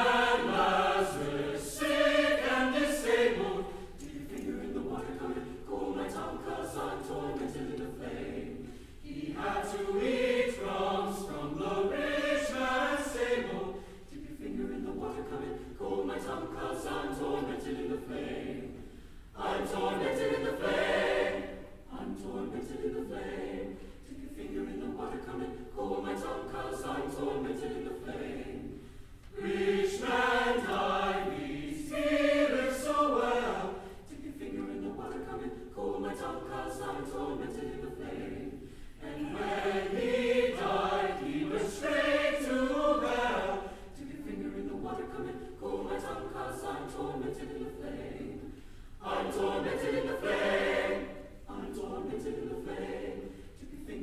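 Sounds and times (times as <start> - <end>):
choir singing: 0.0 - 54.0.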